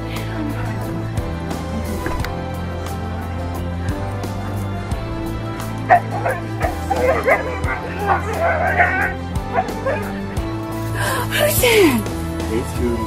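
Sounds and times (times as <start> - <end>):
background music: 0.0 - 13.0
dog whining and yipping: 5.8 - 10.2.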